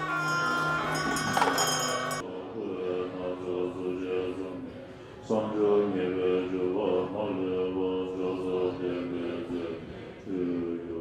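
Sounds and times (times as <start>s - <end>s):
monks chanting low tones: 0.2s - 11.0s.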